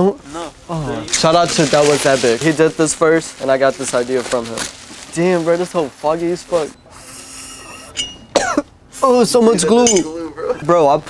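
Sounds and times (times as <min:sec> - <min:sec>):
air drawn through bong: 0:06.8 - 0:08.3
man coughing: 0:08.3 - 0:08.7.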